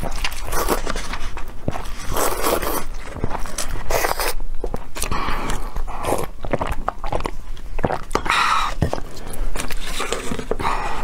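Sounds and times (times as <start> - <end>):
slurping noodles and broth: 1.9 - 4.4.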